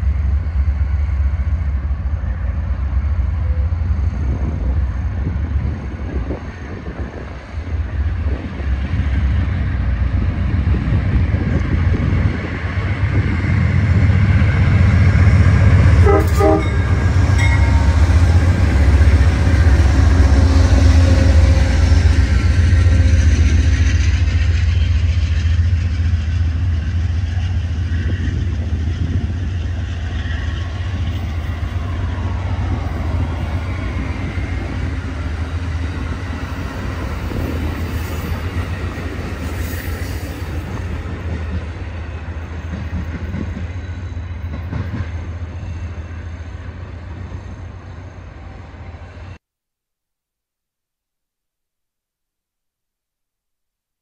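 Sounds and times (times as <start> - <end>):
passing train rumble: 0.0 - 49.4
train horn: 15.9 - 19.0.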